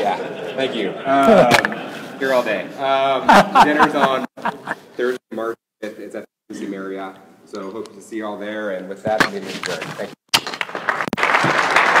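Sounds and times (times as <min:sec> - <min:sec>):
audience applauding: 0:10.5 - 0:12.0.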